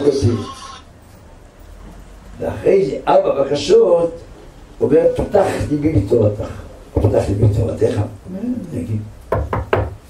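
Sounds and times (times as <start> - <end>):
hand knocking on lectern: 9.3 - 10.0.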